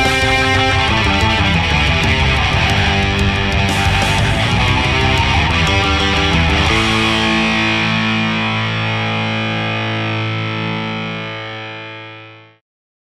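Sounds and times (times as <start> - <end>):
rock backing track: 0.0 - 12.4
distorted electric guitars: 0.0 - 12.6.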